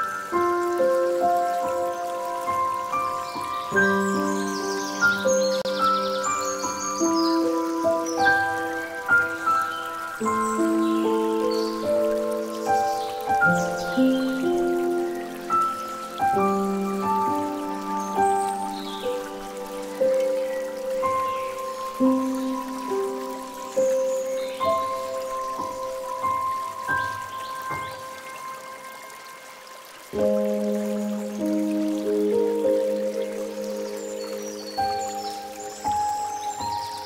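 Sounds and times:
slow soft instrumental music: 0.0 - 37.0
water trickling from fountain spout: 0.0 - 37.0.

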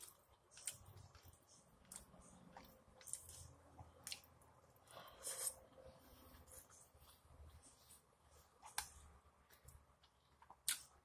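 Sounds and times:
chewing and wet mouth sounds: 0.0 - 8.0, 8.6 - 11.0.

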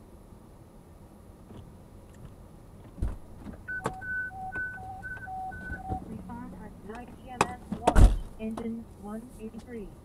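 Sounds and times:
thump: 3.0 - 3.6
alternating high-low alert tones: 3.7 - 7.0.

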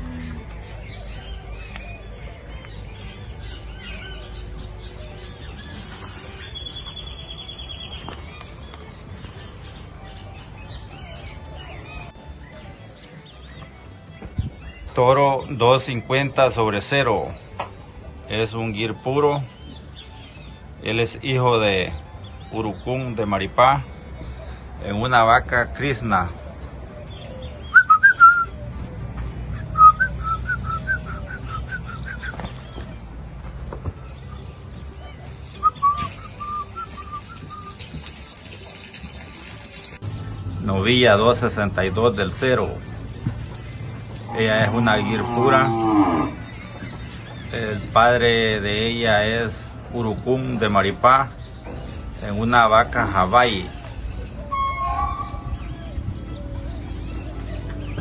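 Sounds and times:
birds chirping and calling: 0.0 - 58.0
bird whistling calls: 0.7 - 13.5, 25.7 - 28.9, 29.5 - 33.0, 34.0 - 38.0, 53.0 - 58.0
rapid bird trill: 49.9 - 58.0.

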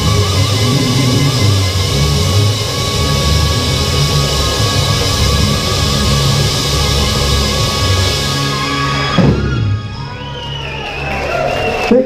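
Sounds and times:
guitar falling slide: 0.0 - 10.4
rock band final chord ringing: 0.0 - 11.2.

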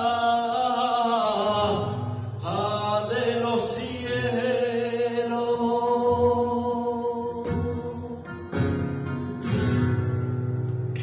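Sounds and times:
man singing through a microphone: 0.0 - 8.5.

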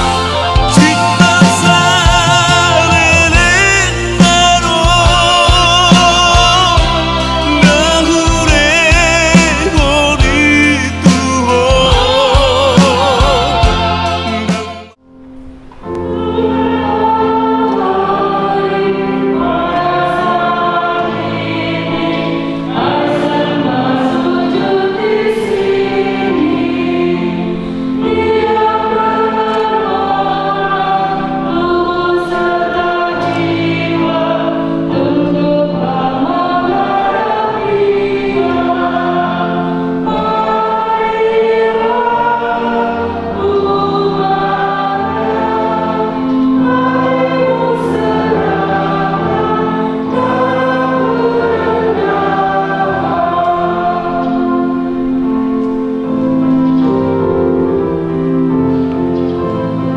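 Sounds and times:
choir singing a hymn: 0.0 - 15.0, 15.8 - 59.9.

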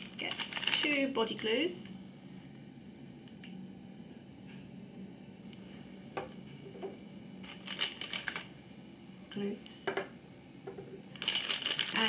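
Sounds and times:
plastic packaging rustling: 0.0 - 1.4, 7.4 - 8.5, 11.1 - 12.0
faint steady hum: 0.0 - 12.0.

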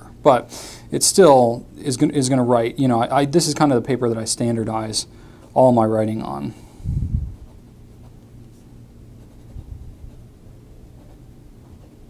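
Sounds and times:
pen nib scratching paper: 7.4 - 10.2, 11.0 - 12.0.

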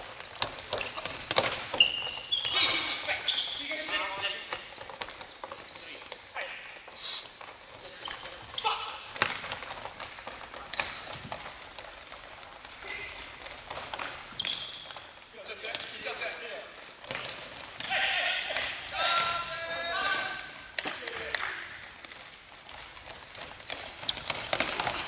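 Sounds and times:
shoes squeaking: 0.0 - 25.0
players calling out: 0.7 - 4.9, 17.0 - 21.7.

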